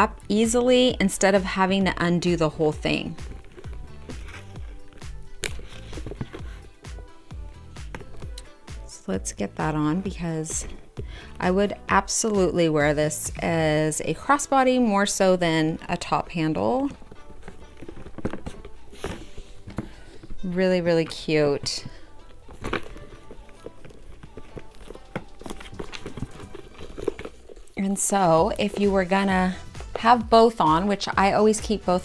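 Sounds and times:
music with steady bass beat: 0.0s - 13.9s, 28.3s - 32.0s
leather strap rustling: 0.2s - 12.3s, 15.2s - 30.7s
metal bag hardware clicking: 3.2s - 6.7s.

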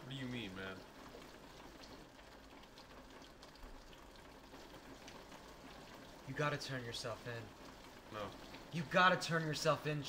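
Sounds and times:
rain hissing outside window: 0.0s - 10.0s
raindrop taps: 0.0s - 10.0s.

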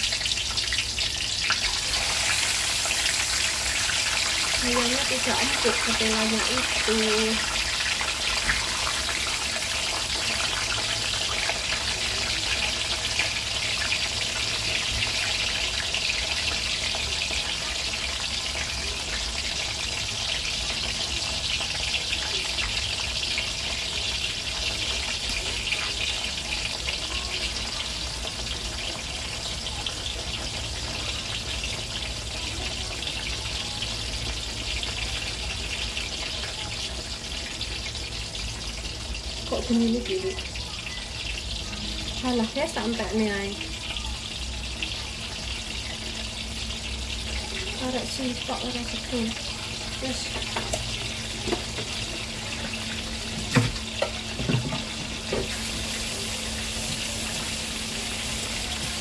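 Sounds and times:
food deep-frying in oil: 0.0s - 59.0s.

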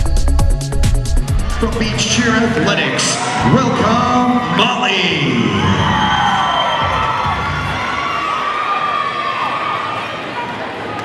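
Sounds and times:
crowd cheering and screaming: 1.4s - 11.0s.

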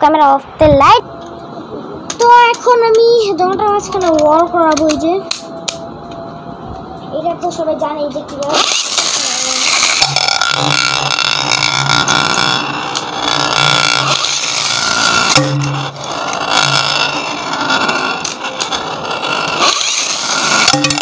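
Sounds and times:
spinning top whirring and rattling: 8.3s - 21.0s.

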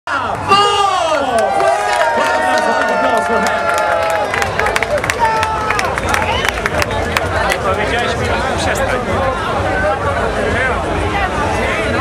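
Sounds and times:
crowd cheering: 0.2s - 8.5s.

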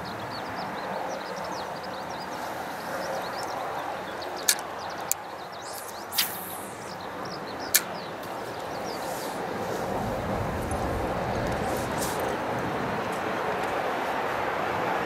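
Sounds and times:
faint high chirps: 0.9s - 9.4s
fishing tackle clicks: 4.4s - 6.9s, 7.7s - 8.4s
fishing rod swish: 5.7s - 7.0s.

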